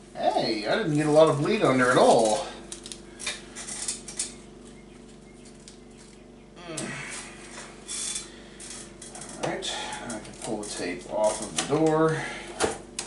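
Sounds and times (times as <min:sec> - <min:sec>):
faint hum: 0:00.0 - 0:13.0
tape peeling and crumpling: 0:00.8 - 0:06.2.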